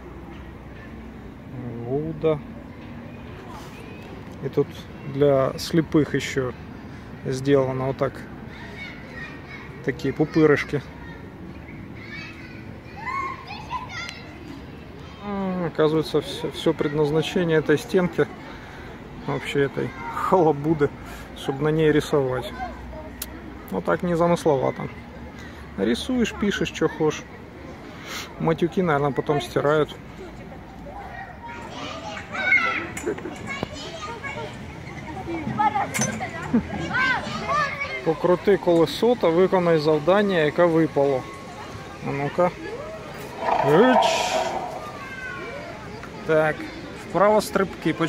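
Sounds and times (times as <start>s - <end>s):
children's high-pitched calls: 43.1s - 45.8s.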